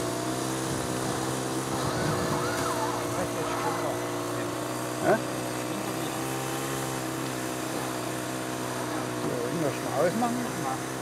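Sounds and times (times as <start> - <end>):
small model engine running: 0.0 - 11.0.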